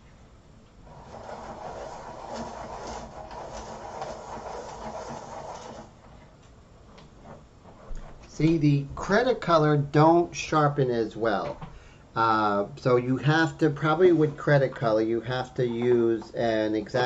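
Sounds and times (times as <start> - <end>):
pencil sharpener grinding: 0.9 - 6.3.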